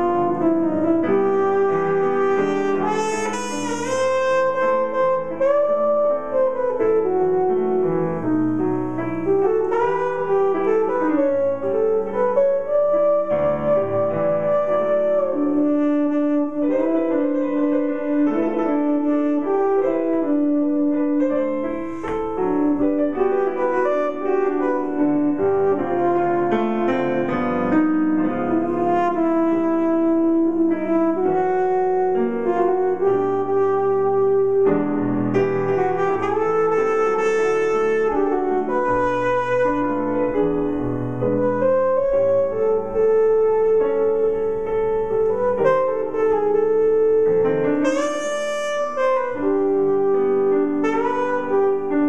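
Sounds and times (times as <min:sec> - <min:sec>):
jazz piano chords: 0:00.0 - 0:52.0.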